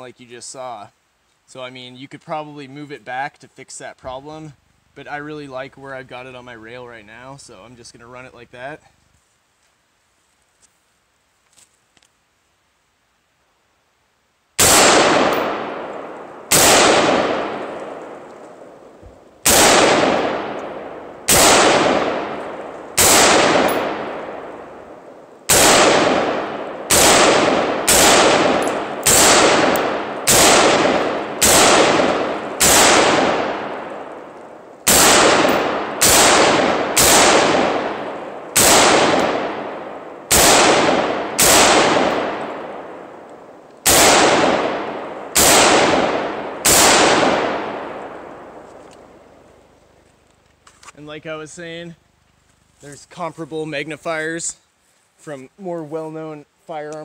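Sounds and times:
rifle shots: 14.6s - 49.2s.

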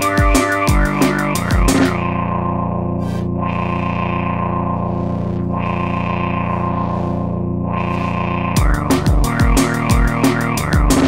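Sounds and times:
distorted synthesizer drone chord: 0.0s - 11.0s.

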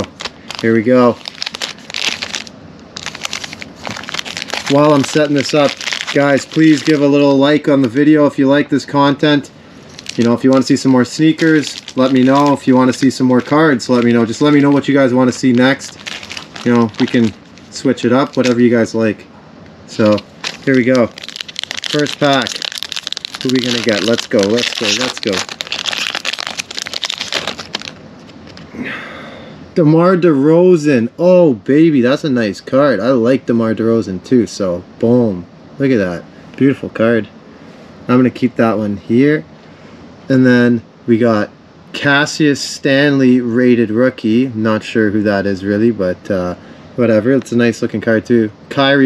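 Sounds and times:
foil wrappers crinkling: 0.0s - 7.3s, 9.9s - 18.9s, 19.9s - 28.6s.

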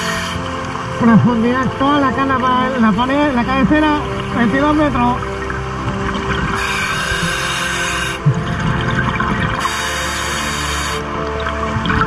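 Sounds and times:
background music: 0.0s - 12.0s
bubbling of exhaled air: 2.8s - 12.0s
diver inhaling through regulator hiss: 6.6s - 8.4s, 9.6s - 11.1s.

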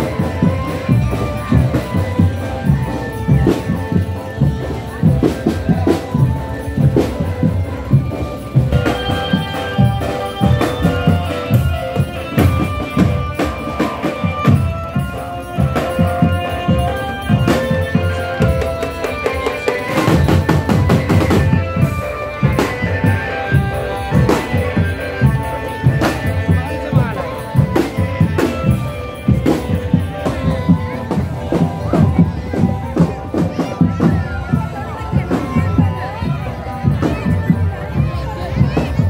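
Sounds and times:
marching drum band: 0.0s - 39.0s
melody over drums: 0.0s - 39.0s.

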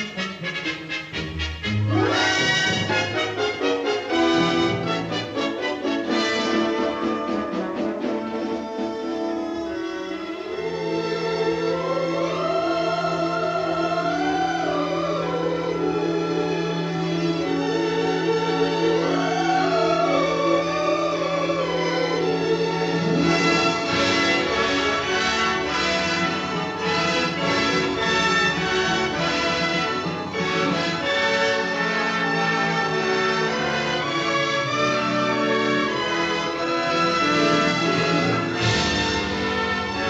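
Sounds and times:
orchestral music: 0.0s - 40.0s
choir singing slow melody: 10.4s - 26.4s.

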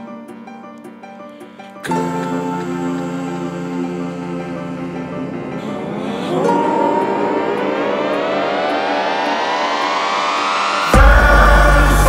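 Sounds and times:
synthesizer riser: 1.9s - 12.0s
steady low synth notes: 2.4s - 12.0s.

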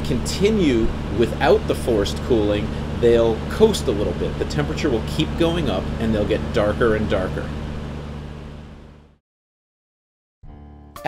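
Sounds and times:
exhaust fan humming: 0.0s - 9.2s.

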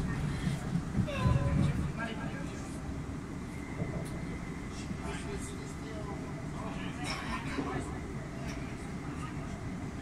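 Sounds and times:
faint indistinct voices: 0.0s - 10.0s.

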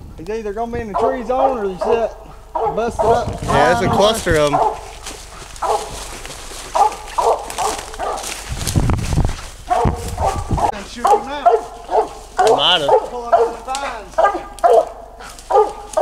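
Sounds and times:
dog barking: 1.0s - 6.1s, 6.7s - 8.4s, 9.7s - 16.0s
low rumble: 2.0s - 10.9s.

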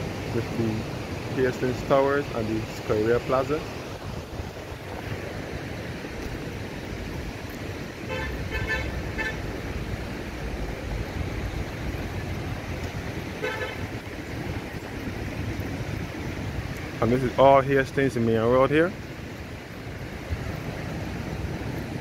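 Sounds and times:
road traffic noise: 0.0s - 22.0s
vehicle horn beeping: 8.1s - 9.4s, 13.4s - 13.9s.

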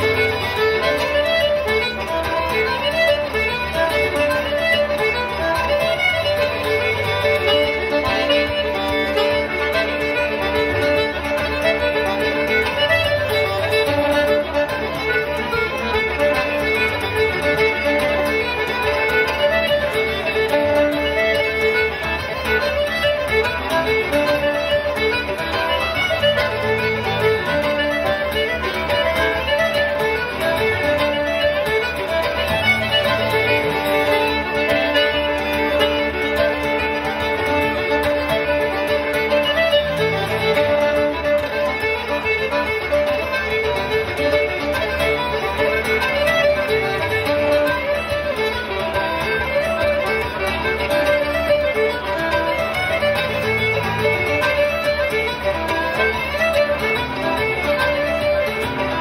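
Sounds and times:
button accordion: 0.0s - 59.0s
fiddle melody: 0.0s - 59.0s.

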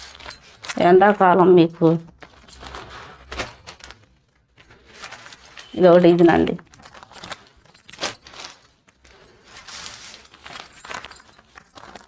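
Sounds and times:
bangles jingling: 0.0s - 12.0s
cloth rustling: 0.0s - 12.0s.

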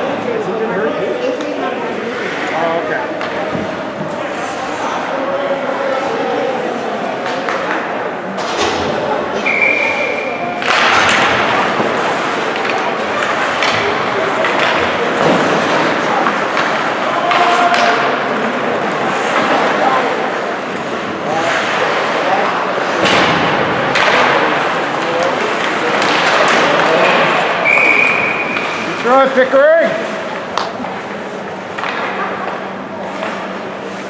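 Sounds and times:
indistinct chatter: 0.0s - 34.0s
hockey sticks and pucks knocking: 3.1s - 4.4s, 7.2s - 9.0s, 10.5s - 29.6s, 30.3s - 34.0s.

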